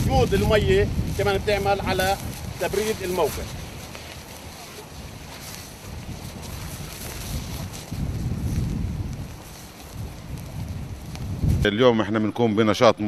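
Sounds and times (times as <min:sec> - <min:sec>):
wind buffeting microphone: 0:00.0 - 0:12.2.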